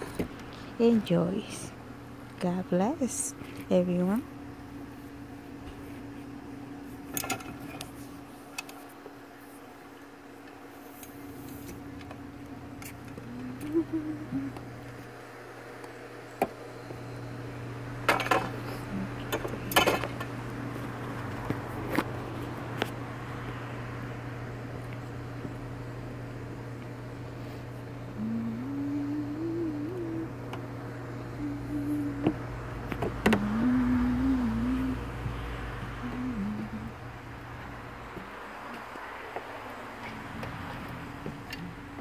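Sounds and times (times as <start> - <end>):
steady low hum: 0.0 - 42.0
person humming a tune: 12.8 - 14.9, 18.6 - 19.7, 28.0 - 37.2.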